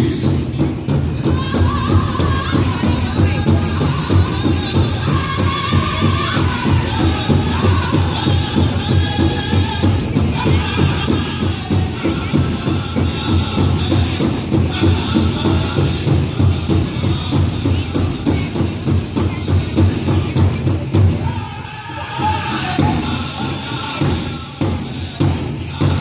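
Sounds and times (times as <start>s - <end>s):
big drum steady beat: 0.0s - 26.0s
high-pitched group singing: 0.0s - 26.0s.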